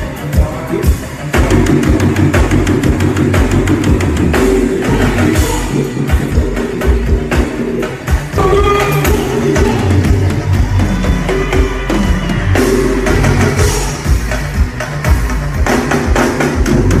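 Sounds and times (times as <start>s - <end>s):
drum kit beat with heavy bass drum: 0.0s - 17.0s
live band music: 0.0s - 17.0s.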